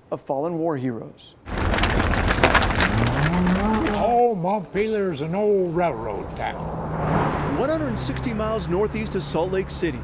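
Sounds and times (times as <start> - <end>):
steady rumbling noise: 1.5 - 4.1
hooves clicking on pavement: 1.5 - 4.2
cow mooing: 2.9 - 3.9.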